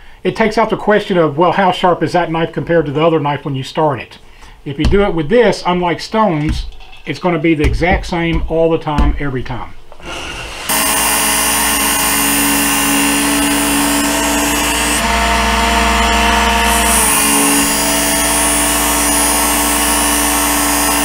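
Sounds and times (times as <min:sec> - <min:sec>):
belt knife sharpener running: 0:10.0 - 0:21.0.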